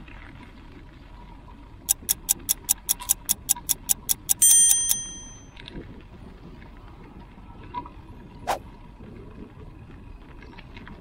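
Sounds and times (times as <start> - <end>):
bright bell ding: 1.9 - 5.5
sharp ticking: 1.9 - 5.5.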